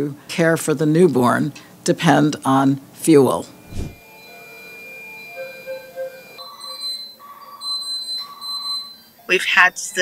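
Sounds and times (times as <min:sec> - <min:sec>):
faint hum of machines: 0:00.0 - 0:10.0.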